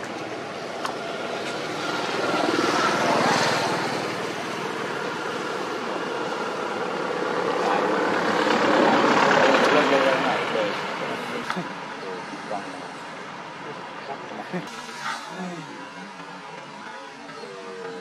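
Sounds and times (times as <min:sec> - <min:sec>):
engine drone passing by: 0:00.0 - 0:18.0.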